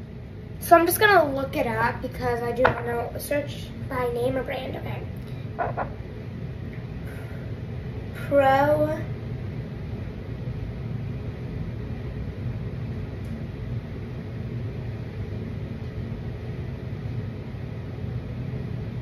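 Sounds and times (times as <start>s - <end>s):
low room hum: 0.0s - 19.0s.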